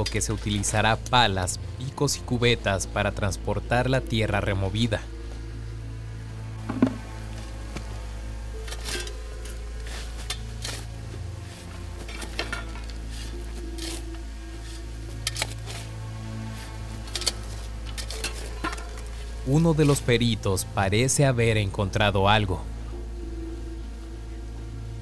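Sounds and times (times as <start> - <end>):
background music: 0.0 - 25.0
shovels and picks striking soil: 8.6 - 20.2.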